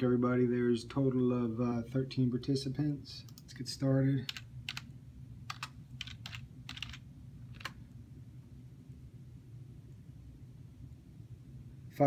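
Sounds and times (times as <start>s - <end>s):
computer keyboard keystrokes: 4.3s - 4.9s, 5.5s - 7.8s.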